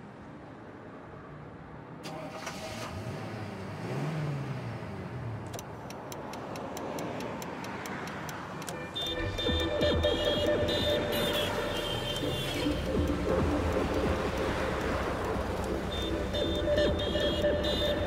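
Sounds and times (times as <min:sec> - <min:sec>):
sampled car engine: 0:02.0 - 0:18.0
even clicks: 0:05.4 - 0:17.7
synth tones: 0:09.0 - 0:18.0
bass: 0:09.2 - 0:18.0.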